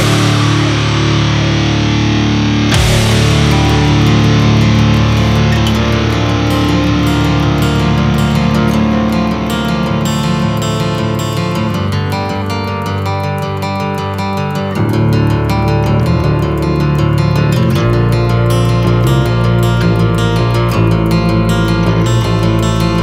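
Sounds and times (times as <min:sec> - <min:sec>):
sharp hit: 0:00.0 - 0:11.7
distorted electric guitars: 0:00.0 - 0:23.0.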